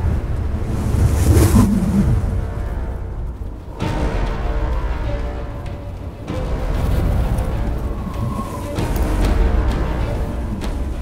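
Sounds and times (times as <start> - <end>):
hissing wind gust: 0.0 - 11.0
strong wind rumbling: 0.0 - 11.0.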